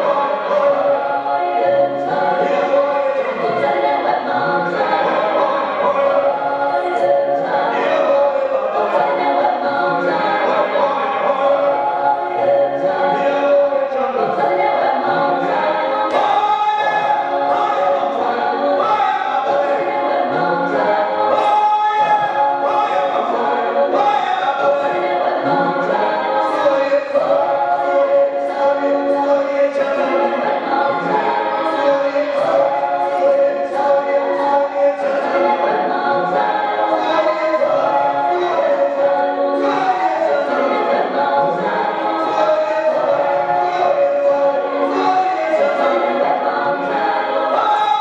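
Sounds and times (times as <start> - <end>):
group singing in chorus: 0.0 - 48.0
music: 0.0 - 48.0.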